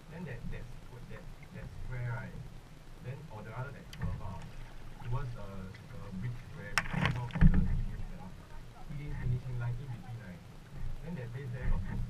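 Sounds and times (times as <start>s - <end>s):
heavy low thump: 6.6s - 8.1s
kayak paddle splashing in water: 6.8s - 8.0s.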